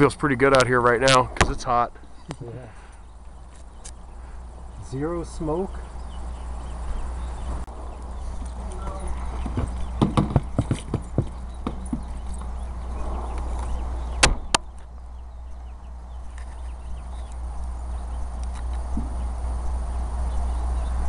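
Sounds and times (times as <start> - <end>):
steady low rumble: 0.0 - 21.0
irregular knocks and clicks: 9.4 - 12.6, 13.3 - 14.9.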